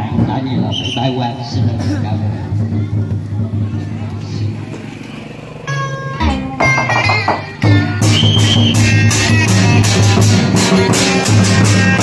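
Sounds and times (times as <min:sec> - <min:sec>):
crowd noise: 0:00.0 - 0:12.0
brass band playing: 0:05.6 - 0:12.0.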